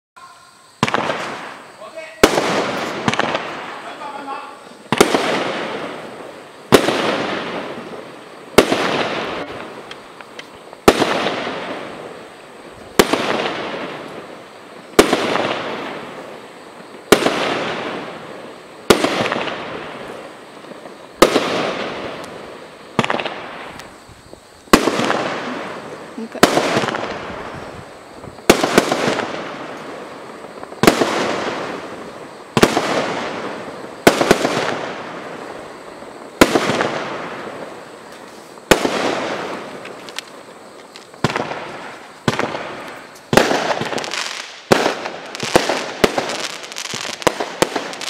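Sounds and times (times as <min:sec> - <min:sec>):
fireworks bangs: 0:00.2 - 0:48.0
fireworks crackle: 0:00.2 - 0:48.0.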